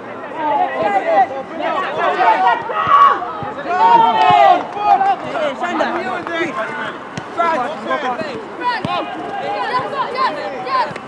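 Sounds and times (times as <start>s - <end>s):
voices shouting and calling: 0.0s - 11.0s.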